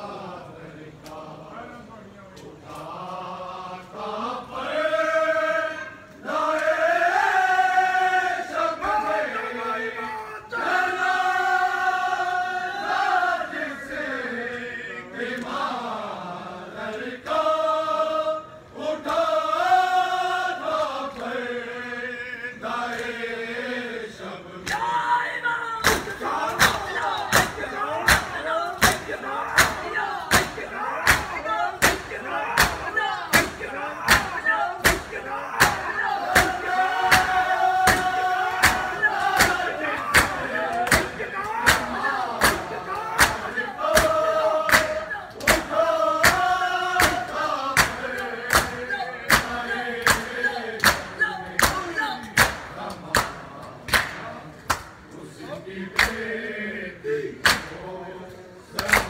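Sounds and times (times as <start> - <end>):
men chanting a mourning lament: 0.0 - 59.0
men slapping bare chests: 24.6 - 24.9, 25.8 - 55.0, 55.9 - 56.3, 57.4 - 57.8, 58.7 - 59.0.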